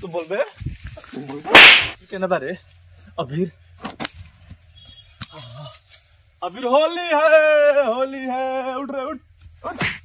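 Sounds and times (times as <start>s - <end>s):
loud hissing burst: 1.5s - 2.0s.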